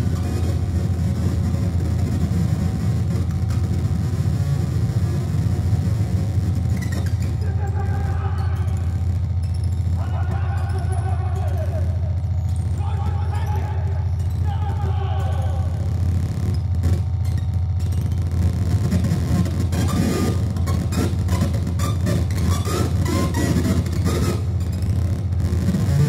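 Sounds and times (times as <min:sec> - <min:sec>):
harsh noise: 0:00.0 - 0:26.0
low amplifier hum: 0:00.0 - 0:26.0
indistinct voices: 0:06.9 - 0:17.2.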